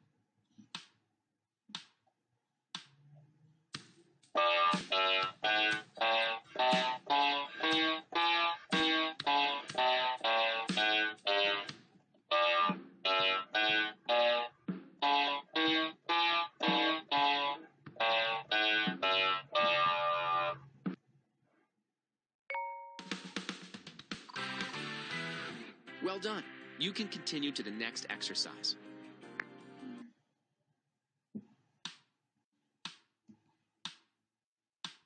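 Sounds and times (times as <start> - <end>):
electronic keyboard playing a scale: 4.4 - 11.7, 12.4 - 20.5.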